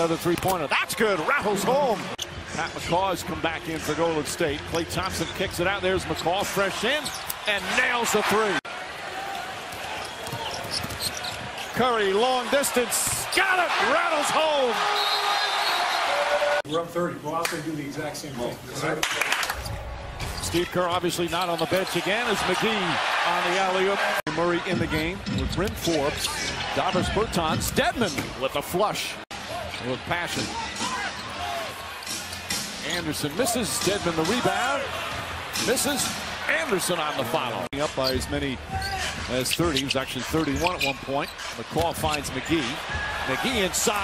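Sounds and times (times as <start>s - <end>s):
arena crowd hum: 0.0s - 44.0s
sharp court sounds: 9.3s - 16.7s.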